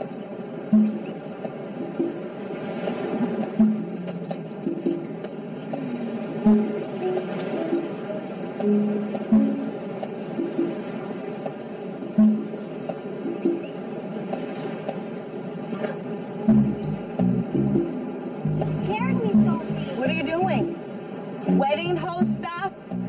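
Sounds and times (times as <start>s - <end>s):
film score low held notes: 16.0s - 23.0s
accented musical hit: 16.5s - 20.7s.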